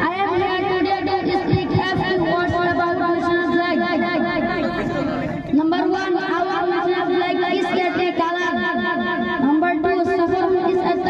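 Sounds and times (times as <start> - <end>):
boy speaking into microphone: 0.0 - 11.0.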